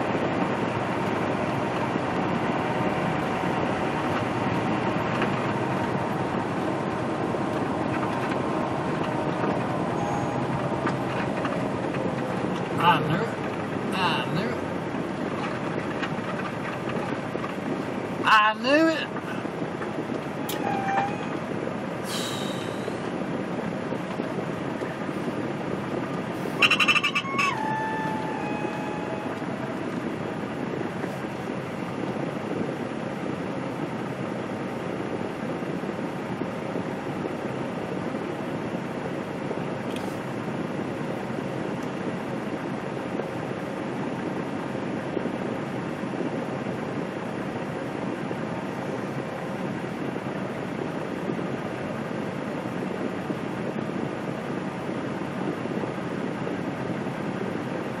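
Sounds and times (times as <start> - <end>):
diesel engine idling: 0.0 - 58.0
squeal with rattling: 20.5 - 21.4, 26.6 - 29.5
air brake hiss: 22.0 - 23.0.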